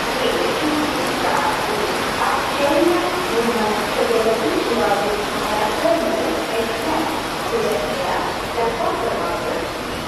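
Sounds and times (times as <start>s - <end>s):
heavy rain on roofing: 0.0s - 10.0s.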